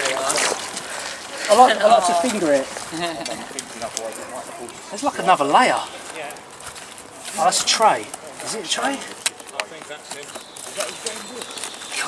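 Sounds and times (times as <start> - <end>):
quiet voices talking: 0.0 - 12.0.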